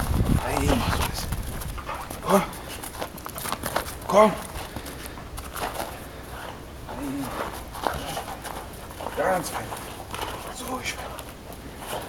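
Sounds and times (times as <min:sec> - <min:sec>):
dog paws scuffing on snow: 0:00.6 - 0:12.0.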